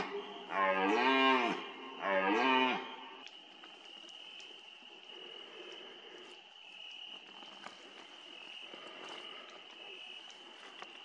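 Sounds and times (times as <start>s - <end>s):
faint insect trill: 0.0s - 11.0s.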